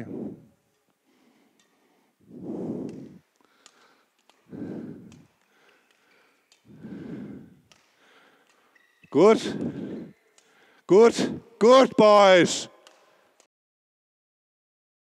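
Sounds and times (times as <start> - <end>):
person breathing: 0.0 - 11.6
badminton shuttle taps: 2.8 - 9.0, 12.8 - 13.4.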